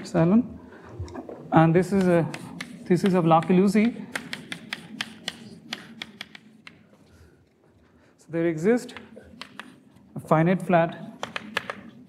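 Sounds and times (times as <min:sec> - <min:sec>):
chalk tapping on blackboard: 0:01.9 - 0:06.8, 0:08.9 - 0:09.8, 0:11.2 - 0:11.8.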